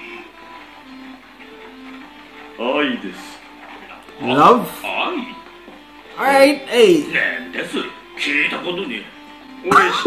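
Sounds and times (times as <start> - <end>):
soft music with slow held notes: 0.0 - 10.0.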